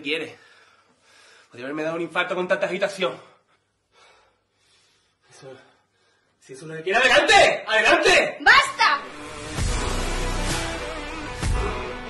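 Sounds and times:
faint breath: 0:00.3 - 0:01.6, 0:03.2 - 0:06.4
man speaking: 0:06.4 - 0:08.4.

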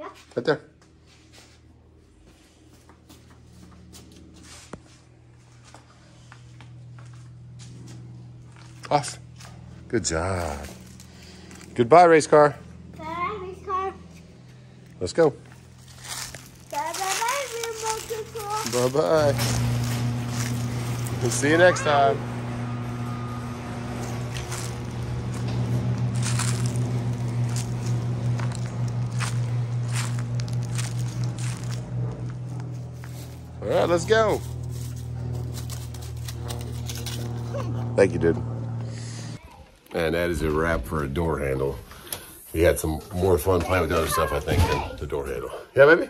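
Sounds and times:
low mechanical hum: 0:00.0 - 0:46.0
footsteps in dry leaves: 0:00.9 - 0:11.8, 0:15.4 - 0:37.9
child calling: 0:16.7 - 0:18.9, 0:21.5 - 0:22.2, 0:44.0 - 0:45.0.

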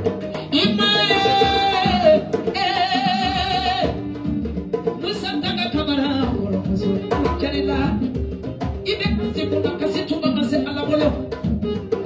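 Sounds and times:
hand drums: 0:00.0 - 0:12.0
woman singing into microphone: 0:00.2 - 0:04.1, 0:05.0 - 0:11.8.

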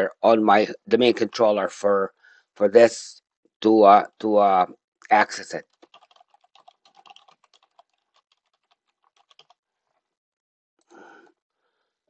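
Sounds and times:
computer keyboard typing: 0:05.6 - 0:09.6.

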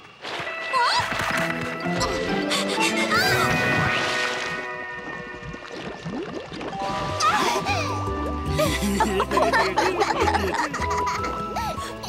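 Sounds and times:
orchestral music: 0:01.0 - 0:06.2, 0:06.8 - 0:12.0.

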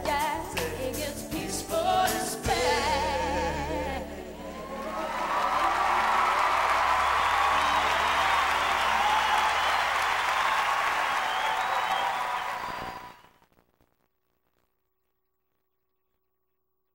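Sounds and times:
audience applauding and cheering: 0:04.3 - 0:13.4.

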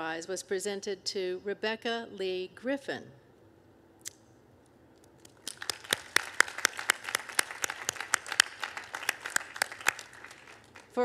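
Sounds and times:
person clapping hands: 0:05.3 - 0:11.0.

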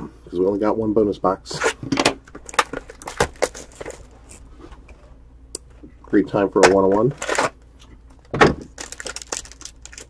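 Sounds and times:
cardboard rustling: 0:02.4 - 0:04.8
cardboard box crackling: 0:02.5 - 0:04.4, 0:08.7 - 0:10.0.

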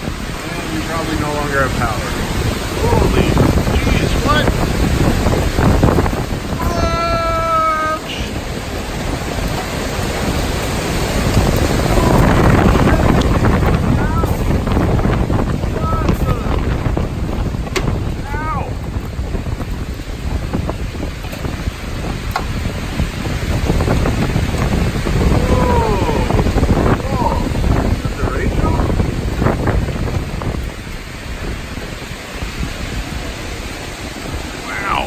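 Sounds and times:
strong wind buffeting microphone: 0:00.0 - 0:35.0.

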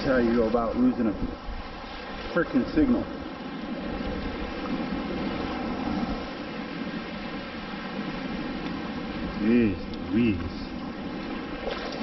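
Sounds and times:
surf water rushing: 0:00.0 - 0:12.0.

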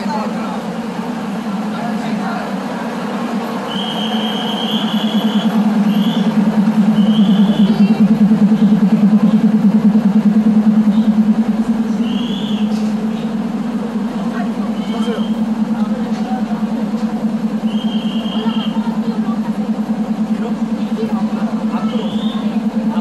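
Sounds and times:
diesel train engine droning: 0:00.0 - 0:23.0.

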